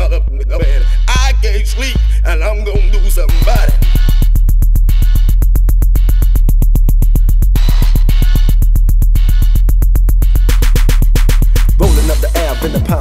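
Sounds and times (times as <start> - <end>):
deep sub-bass: 0.0 - 13.0
rapid drum-machine beat: 0.0 - 13.0.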